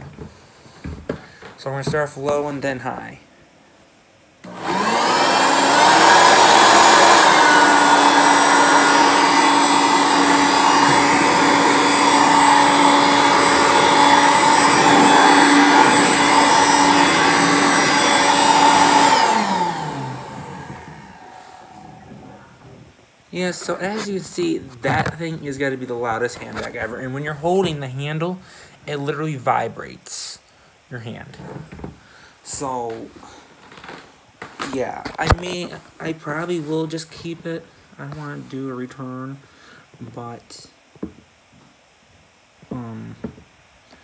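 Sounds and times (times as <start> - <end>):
hand vacuum motor whining: 4.4 - 22.8.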